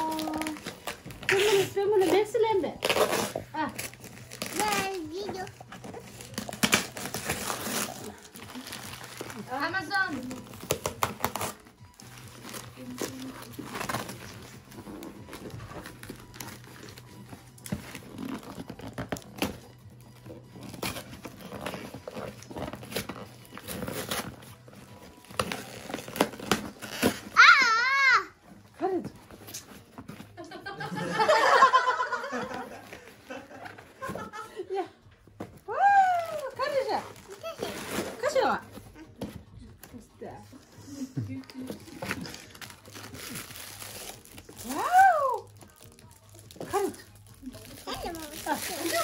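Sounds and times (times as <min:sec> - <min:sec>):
plastic wrapping crinkling: 0:00.0 - 0:27.6, 0:35.2 - 0:39.1, 0:41.4 - 0:49.0
packing tape tearing: 0:00.0 - 0:27.9, 0:36.1 - 0:39.0, 0:41.4 - 0:49.0
child exclaiming: 0:27.4 - 0:28.4
cardboard rustling and scraping: 0:36.4 - 0:39.5.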